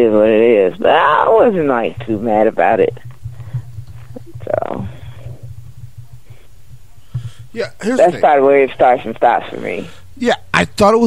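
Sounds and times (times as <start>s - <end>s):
low pulsing hum: 0.0s - 10.5s.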